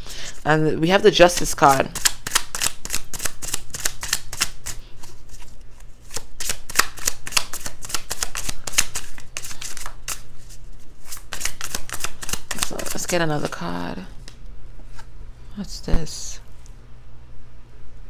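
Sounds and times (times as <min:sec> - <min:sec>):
cards being shuffled: 0:01.2 - 0:13.6.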